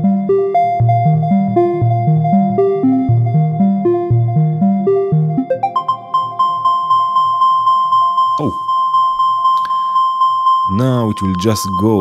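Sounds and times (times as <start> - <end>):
synthesizer bass line: 0.0 - 9.7
synthesizer plucked notes: 0.0 - 12.0.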